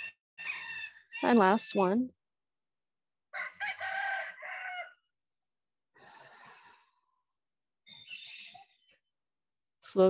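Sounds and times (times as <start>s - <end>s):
rooster crowing: 0.4s - 1.2s, 3.3s - 5.1s.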